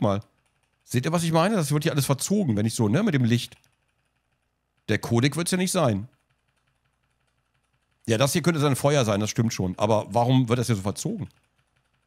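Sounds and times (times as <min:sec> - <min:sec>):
man speaking: 0:00.0 - 0:00.2, 0:00.9 - 0:03.6, 0:04.9 - 0:06.1, 0:08.1 - 0:11.3.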